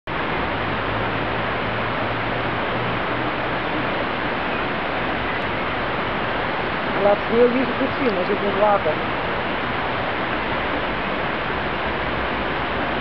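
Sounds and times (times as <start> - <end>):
stream running over stones: 0.1 - 13.0.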